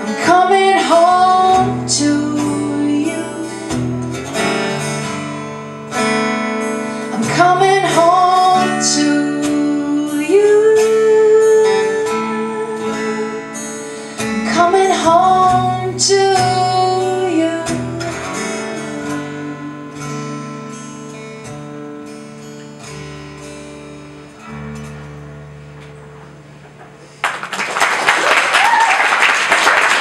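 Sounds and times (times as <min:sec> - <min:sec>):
person singing: 0:00.0 - 0:04.8, 0:07.0 - 0:20.4
acoustic guitar strummed: 0:00.0 - 0:27.4.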